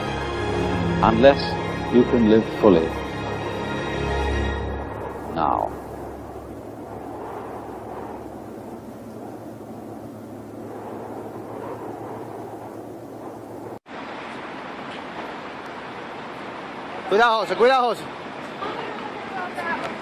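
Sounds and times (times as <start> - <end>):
steady background hiss: 0.0 - 20.0
steady rushing wind-like noise: 0.0 - 20.0.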